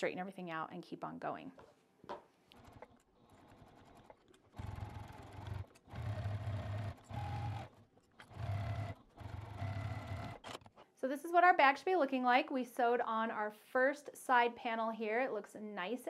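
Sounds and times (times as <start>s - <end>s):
sewing machine stitching: 2.5s - 10.7s.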